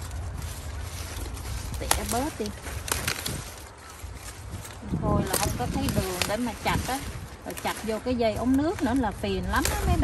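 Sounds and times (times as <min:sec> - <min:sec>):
rustling of leaves being handled: 0:00.0 - 0:10.0.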